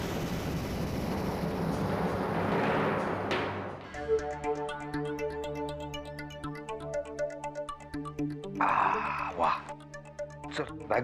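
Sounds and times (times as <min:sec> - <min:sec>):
dense wash of noise: 0:00.0 - 0:03.8
sustained low drone: 0:00.0 - 0:05.8.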